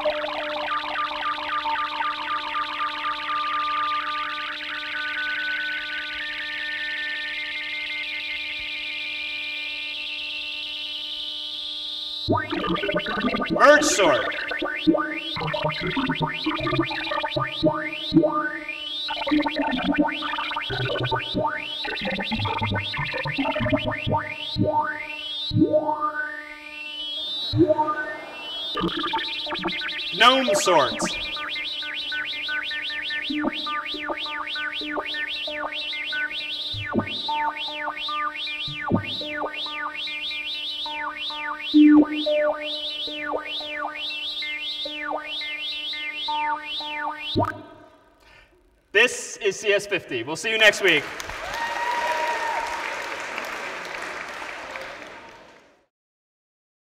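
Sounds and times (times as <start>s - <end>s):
synthesized beeps in rising sweeps: 12.3s - 47.9s.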